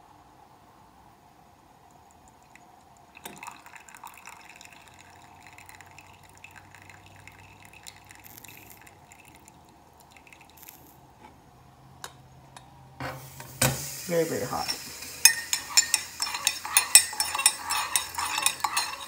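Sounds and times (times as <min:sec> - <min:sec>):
faint dripping and splashing: 0:01.8 - 0:11.1
coffee pouring into a mug: 0:01.9 - 0:11.1, 0:13.6 - 0:19.0.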